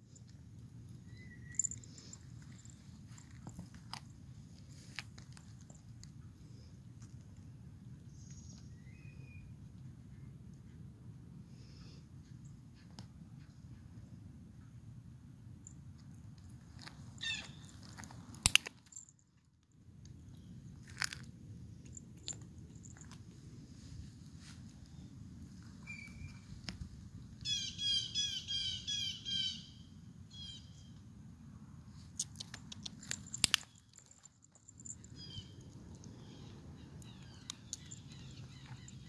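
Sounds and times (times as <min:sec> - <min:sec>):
kitten chewing treats: 0:32.2 - 0:33.7.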